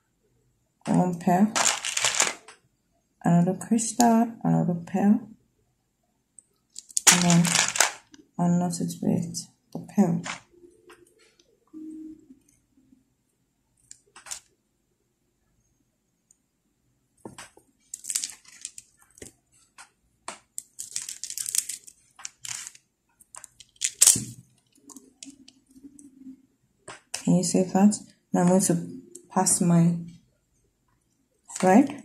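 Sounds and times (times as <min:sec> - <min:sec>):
beads and line rustling: 0:01.5 - 0:02.5, 0:06.6 - 0:08.2, 0:10.1 - 0:10.5, 0:13.8 - 0:14.6, 0:17.2 - 0:26.3.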